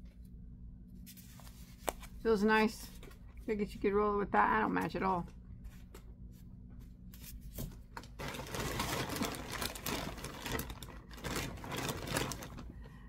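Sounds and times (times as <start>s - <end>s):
yarn rustling and crinkling: 8.0s - 12.9s.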